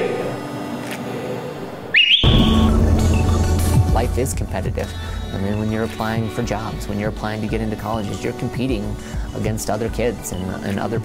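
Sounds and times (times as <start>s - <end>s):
sports whistle blast: 1.9s - 3.4s
music with heavy bass: 2.2s - 8.0s.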